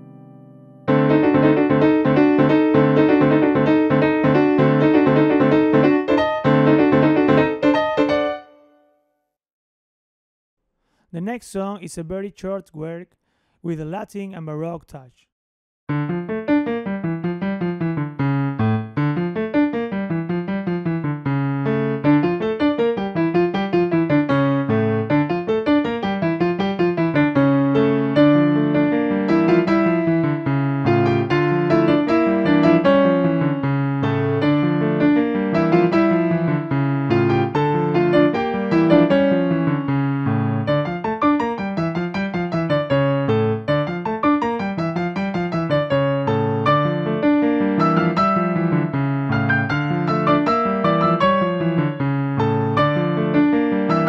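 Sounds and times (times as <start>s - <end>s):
piano playing fast notes: 0.0s - 9.0s, 15.9s - 54.0s.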